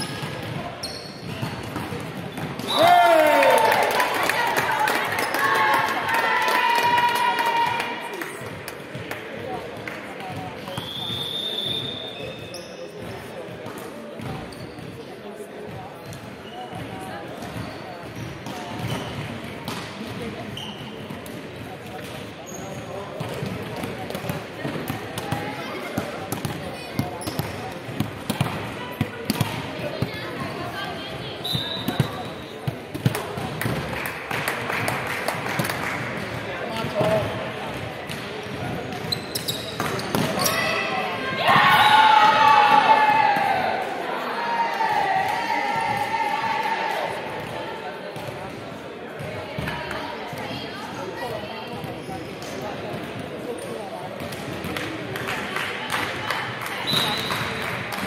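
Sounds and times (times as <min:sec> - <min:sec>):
indistinct voices in sports hall: 0:00.0 - 0:58.0
crowd shouting and cheering: 0:02.6 - 0:08.3, 0:40.3 - 0:47.6.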